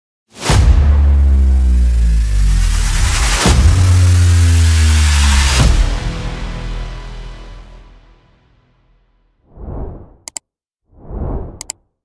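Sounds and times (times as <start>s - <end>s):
deep bass drone: 0.5s - 8.2s
whoosh: 9.5s - 10.3s, 11.0s - 11.8s.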